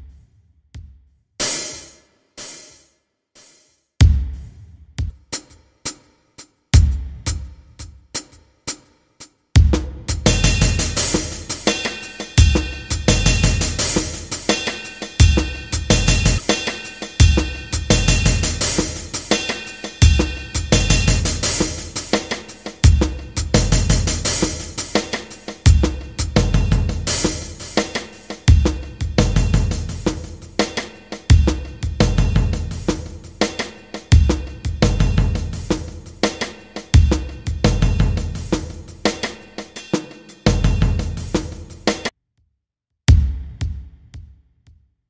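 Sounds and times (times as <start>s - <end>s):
drum beat backing track: 0.0s - 42.1s, 43.1s - 44.4s.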